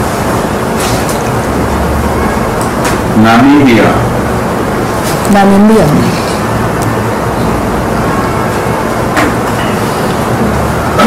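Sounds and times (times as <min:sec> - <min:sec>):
speech: 0:05.3 - 0:06.2.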